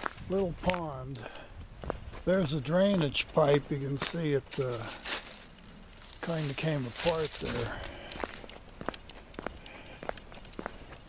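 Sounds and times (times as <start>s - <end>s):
footsteps on paved road: 0.0s - 11.0s.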